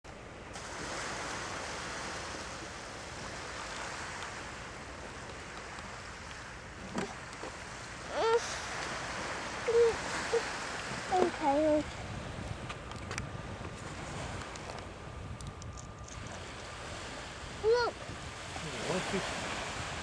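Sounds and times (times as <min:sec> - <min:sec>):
sea surf rushing: 0:00.1 - 0:20.0.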